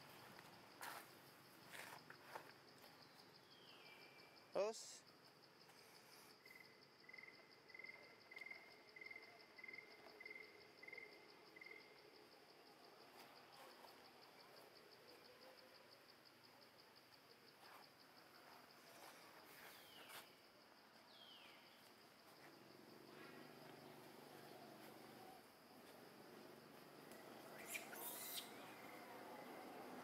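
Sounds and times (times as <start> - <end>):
insect trilling: 22.2 - 30.0.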